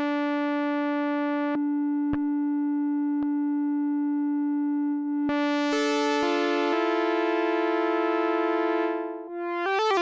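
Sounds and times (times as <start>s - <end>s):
synthesizer holding a steady note: 0.0s - 10.0s.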